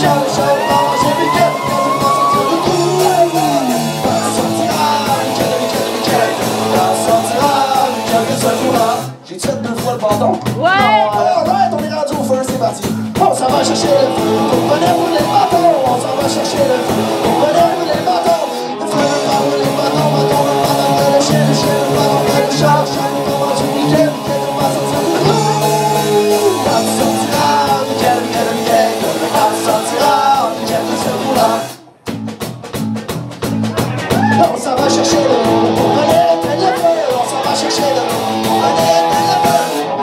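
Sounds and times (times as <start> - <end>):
metal band playing: 0.0 - 40.0.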